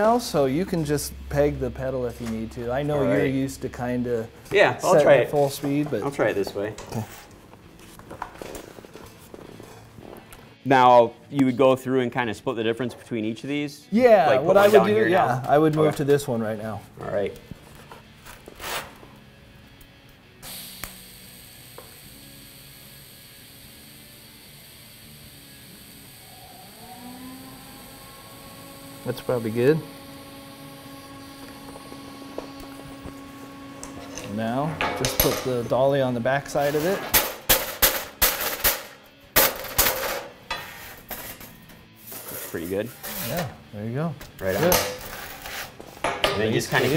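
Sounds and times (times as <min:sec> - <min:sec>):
welding arc hissing: 0:20.4 - 0:33.9.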